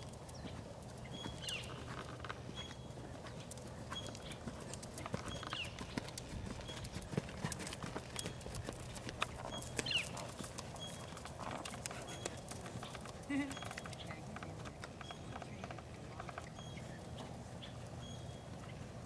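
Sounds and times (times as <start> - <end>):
horse hoofbeats on dirt: 0.0 - 18.8.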